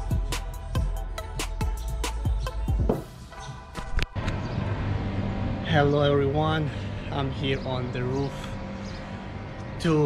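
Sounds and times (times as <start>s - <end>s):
background music: 0.0s - 10.0s
low outdoor hum: 3.0s - 10.0s.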